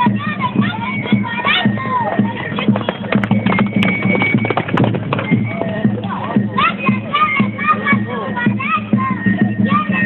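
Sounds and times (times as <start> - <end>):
horses galloping on dirt: 2.2 - 6.2.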